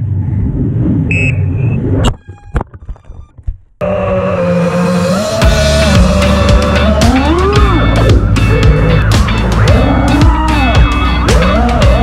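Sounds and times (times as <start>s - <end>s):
rushing air: 0.0s - 2.1s
drone motors whining: 3.8s - 12.0s.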